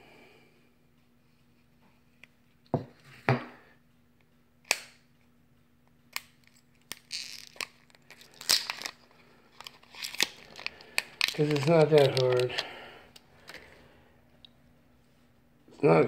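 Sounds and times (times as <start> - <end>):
plastic wrap cracking and crinkling: 6.4 - 12.7.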